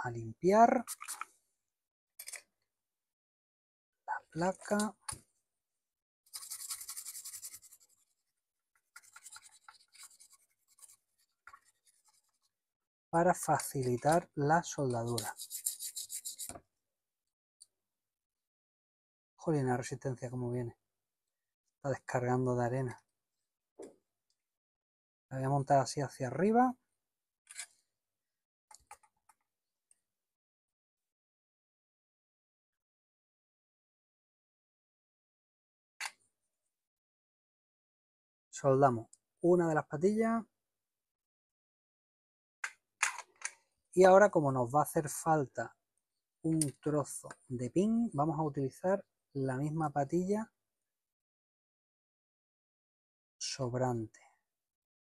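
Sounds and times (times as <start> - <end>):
toothbrush scrubbing circuit board: 0.8 - 1.3, 6.3 - 12.5, 15.0 - 16.5.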